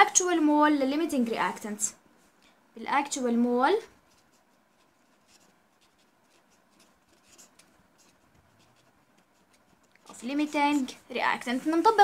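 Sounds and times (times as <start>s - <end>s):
marker pen scratching on paper: 3.8s - 12.0s.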